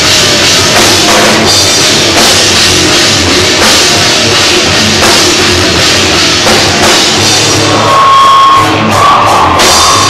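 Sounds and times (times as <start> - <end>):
live rock band: 0.0 - 10.0.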